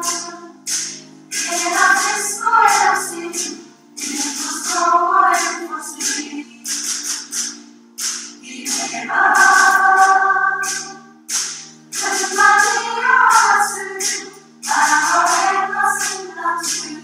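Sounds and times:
mixed choir singing: 0.0s - 6.5s, 8.4s - 11.2s, 12.0s - 17.0s.

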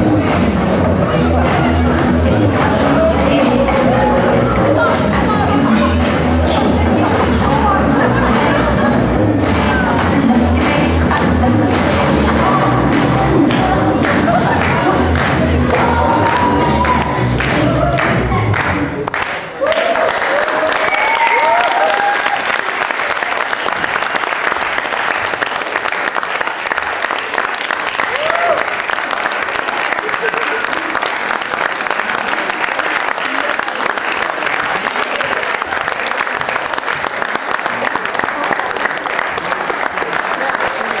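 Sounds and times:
audience applauding: 13.5s - 41.0s.

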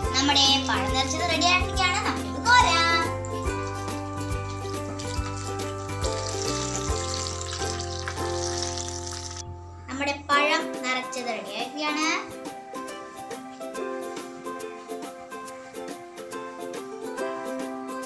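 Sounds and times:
child's voice: 0.0s - 3.2s, 9.9s - 12.4s
background music: 0.0s - 18.0s
hot oil sizzling: 0.6s - 9.5s, 12.4s - 17.9s.

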